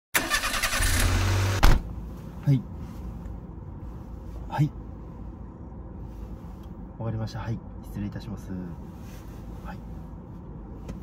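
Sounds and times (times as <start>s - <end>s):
car starter cranking: 0.2s - 1.6s
car engine revving and idling: 0.7s - 8.0s.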